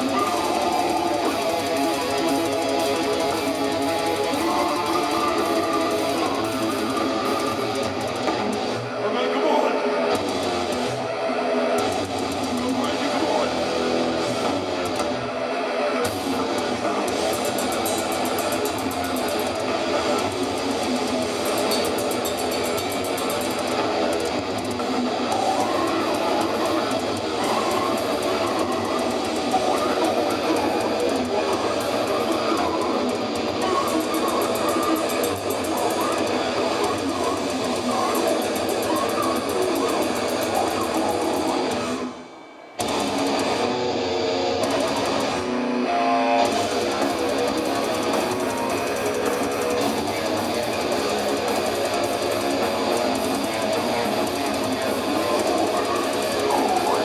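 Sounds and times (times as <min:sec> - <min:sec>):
death metal band playing live: 0:00.0 - 0:57.0.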